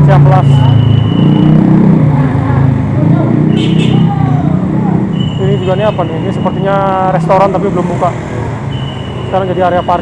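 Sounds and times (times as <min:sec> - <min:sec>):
traffic engine noise: 0:00.0 - 0:10.0.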